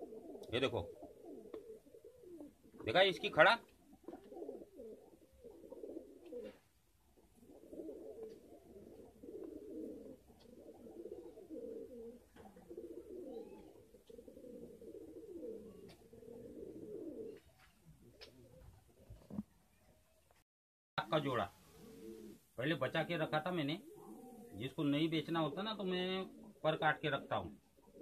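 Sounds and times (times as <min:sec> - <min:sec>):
pigeon cooing: 0:00.0 - 0:19.9, 0:21.6 - 0:28.0.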